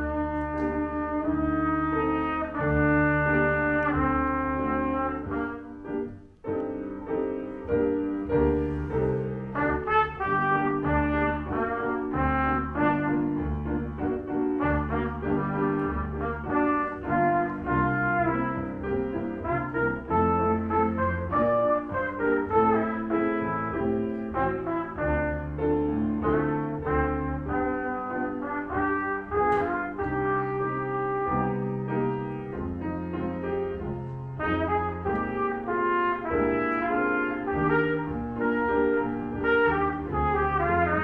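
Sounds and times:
child playing trumpet melody: 0.0s - 6.1s, 9.5s - 32.4s, 33.4s - 41.0s
grand piano: 0.0s - 41.0s.

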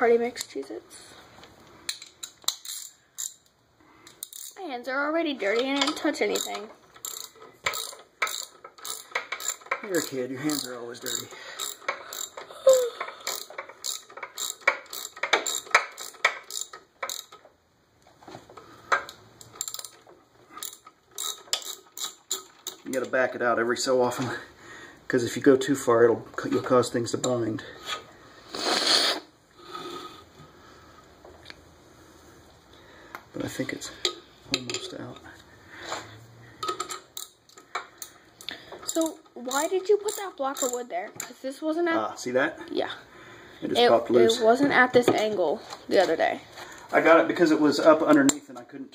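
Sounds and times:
wrench clicking: 1.9s - 4.6s, 5.5s - 17.4s, 19.0s - 20.0s, 20.6s - 22.8s, 36.6s - 38.2s, 38.8s - 41.3s.

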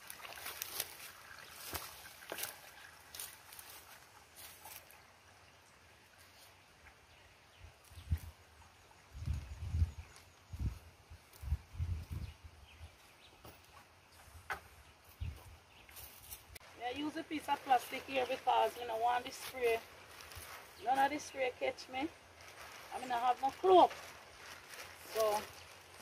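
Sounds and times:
liquid pouring with glugs: 0.0s - 5.0s.

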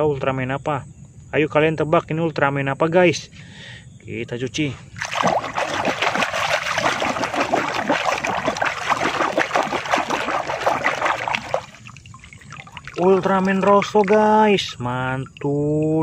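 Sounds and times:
water sloshing in a bucket: 4.8s - 16.0s
hand scrubbing toy underwater: 5.0s - 16.0s.

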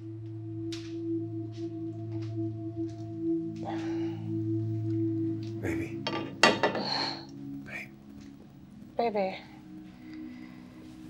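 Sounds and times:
low drone film music: 0.0s - 11.0s.

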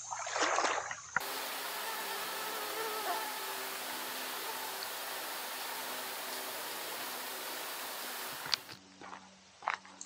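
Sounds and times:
flying insect buzzing: 1.2s - 8.8s
hiss: 1.2s - 8.8s.

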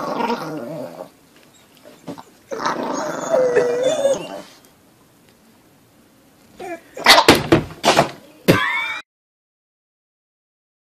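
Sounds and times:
small dog growling: 0.0s - 1.2s, 2.2s - 4.7s.

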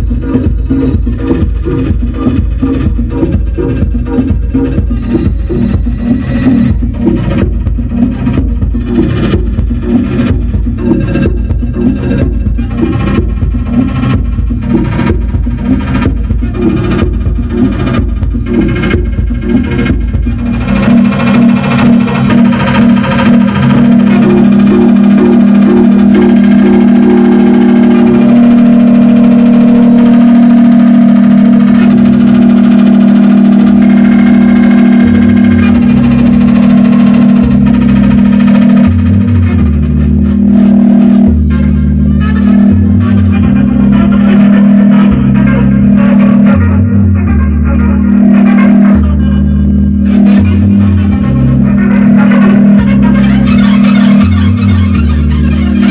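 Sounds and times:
electronic beat over heavy bass: 0.0s - 55.9s
loud steady synth drone: 0.0s - 55.9s.

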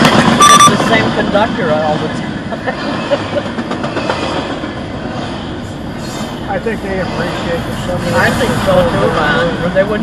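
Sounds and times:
train wheels on rails: 0.0s - 10.0s.

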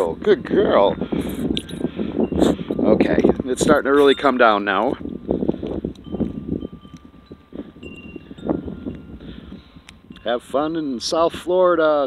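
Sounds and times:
faint thin ringing tones: 0.9s - 11.0s.

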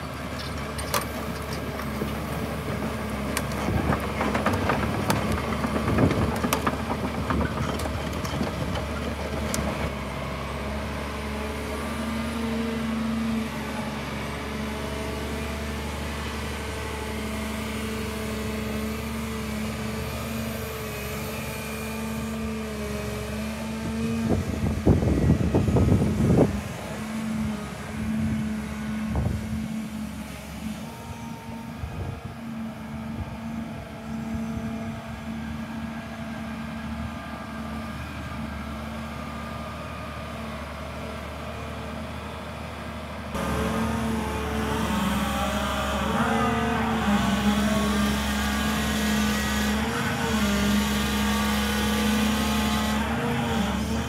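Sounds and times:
excavator diesel engine running: 0.0s - 54.0s
hydraulic whine: 43.4s - 54.0s.

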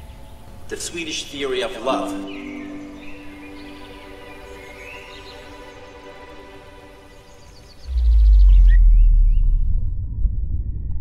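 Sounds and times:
soft sustained music chords: 0.0s - 9.4s
birds chirping: 0.0s - 9.6s
loud deep rumble: 7.9s - 11.0s.

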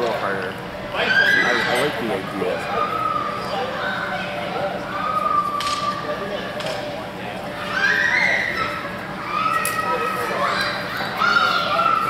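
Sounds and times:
voices echoing in a large hall: 0.0s - 12.0s.

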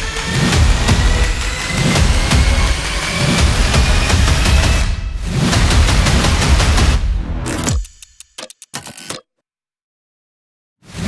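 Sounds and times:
sharp ticks: 7.5s - 9.2s.

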